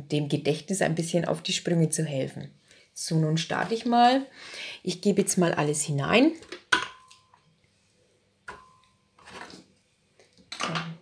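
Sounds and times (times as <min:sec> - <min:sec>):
glass ringing: 0:06.8 - 0:07.4, 0:08.5 - 0:09.1.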